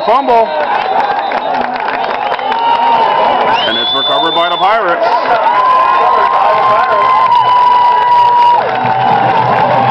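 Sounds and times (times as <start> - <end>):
football crowd cheering and shouting: 0.0 - 9.9.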